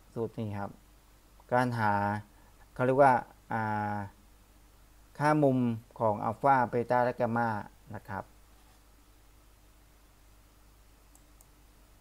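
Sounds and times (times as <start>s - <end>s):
computer mouse clicking: 11.1s - 11.6s.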